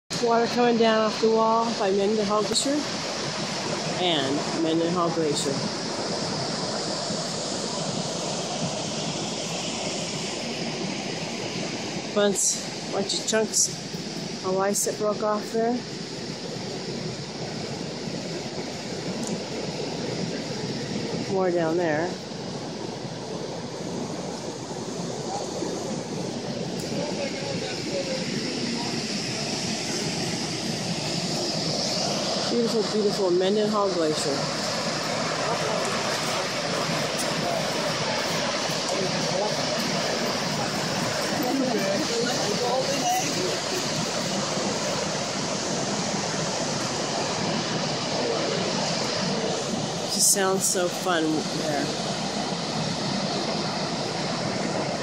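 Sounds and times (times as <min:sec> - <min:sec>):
waterfall rushing: 0:00.1 - 0:55.0.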